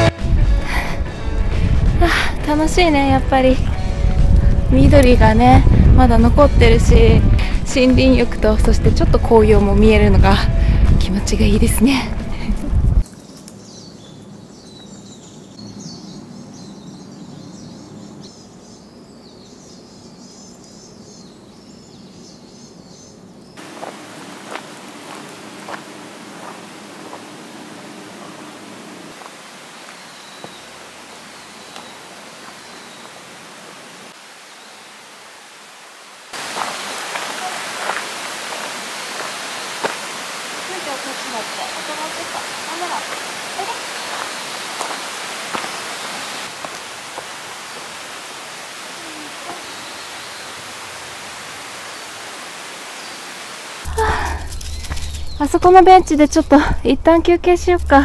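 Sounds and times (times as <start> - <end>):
small birds chirping: 13.0 - 35.1, 36.4 - 57.0
outdoor background hiss: 13.0 - 58.0
footsteps on dirt trail: 23.6 - 33.8, 36.3 - 40.2, 41.8 - 48.0.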